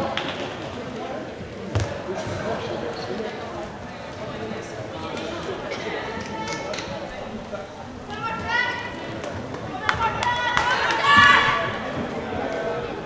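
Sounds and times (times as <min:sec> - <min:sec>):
sports hall din: 0:00.0 - 0:13.0
shouting voices echoing: 0:09.7 - 0:11.9.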